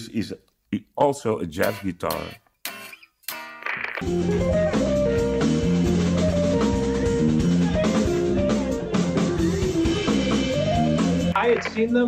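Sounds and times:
electric guitar jazz line: 0:01.6 - 0:11.7
bass and drums: 0:04.1 - 0:12.0.

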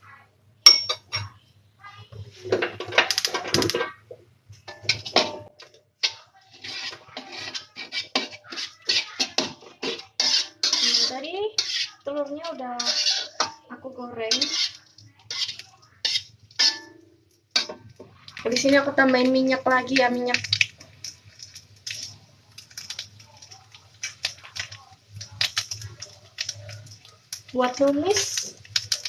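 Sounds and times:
metal pans and utensils clattering: 0:00.7 - 0:01.4, 0:02.1 - 0:29.0.

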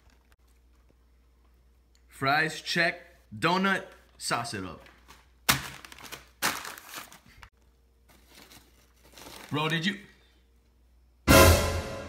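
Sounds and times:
paper bag crinkling: 0:04.9 - 0:10.2.

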